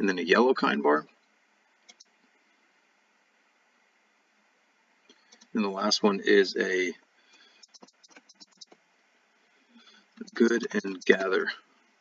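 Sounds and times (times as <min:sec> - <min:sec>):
faint keyboard typing: 0:01.1 - 0:02.4, 0:05.0 - 0:05.6, 0:07.3 - 0:08.9, 0:09.8 - 0:11.4.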